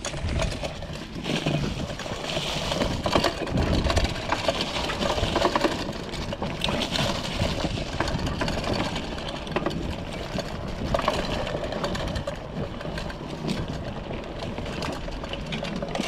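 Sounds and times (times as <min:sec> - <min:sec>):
bike frame rattling and clicking: 0:00.0 - 0:16.0.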